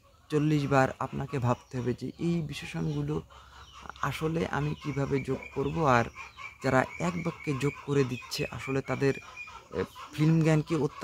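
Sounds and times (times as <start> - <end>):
chickens clucking: 0.0 - 11.0
man's voice: 0.3 - 11.0.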